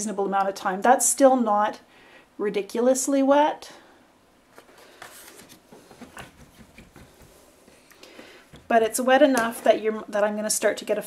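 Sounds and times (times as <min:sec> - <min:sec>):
light paper rustles: 0:04.5 - 0:07.4.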